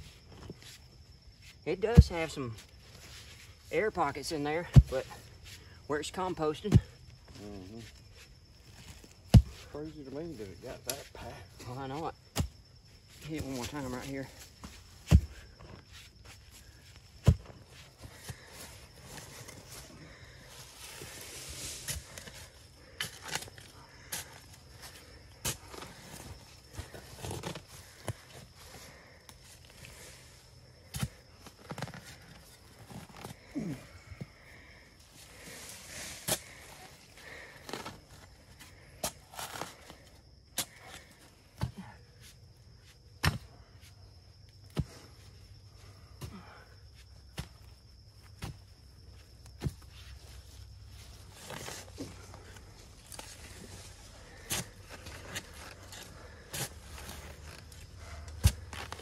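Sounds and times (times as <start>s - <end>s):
scraping and rustling soil: 0.0s - 59.0s
shovel striking clay soil: 43.2s - 43.5s.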